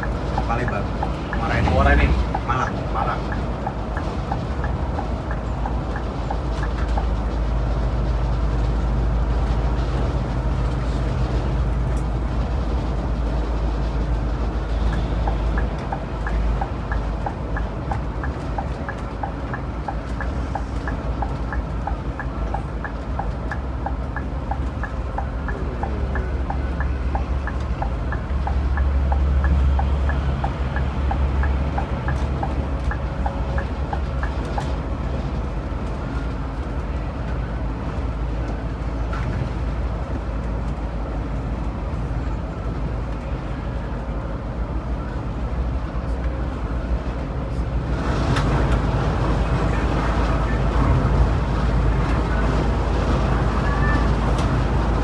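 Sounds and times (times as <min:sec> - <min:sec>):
light even ticking: 0:00.0 - 0:07.4, 0:14.7 - 0:34.8
coach engine and road rumble: 0:00.0 - 0:55.0.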